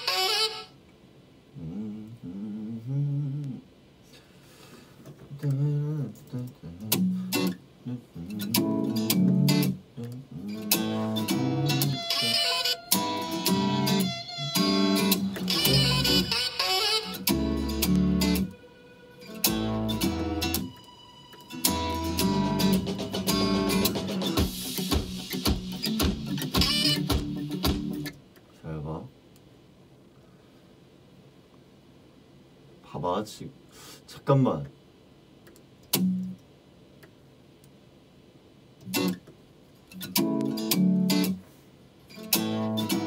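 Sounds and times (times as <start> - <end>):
plucked guitar music with bass: 5.4 - 20.8, 21.4 - 28.2, 35.9 - 36.4, 38.8 - 39.3, 39.9 - 41.4, 42.1 - 43.0.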